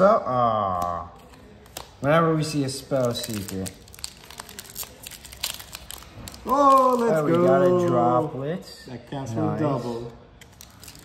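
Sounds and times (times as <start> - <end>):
foil wrapper crinkling and tearing: 1.6 - 7.5, 10.4 - 11.0.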